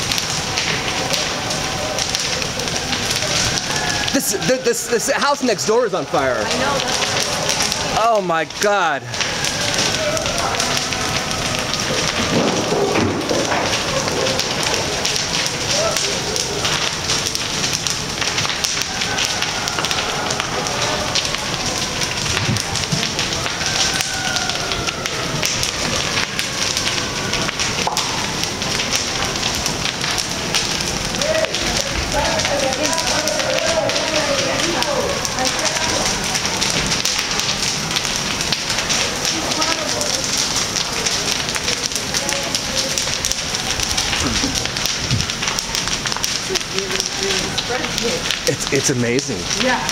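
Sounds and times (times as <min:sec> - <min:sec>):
fire crackling and popping: 0:00.0 - 0:49.9.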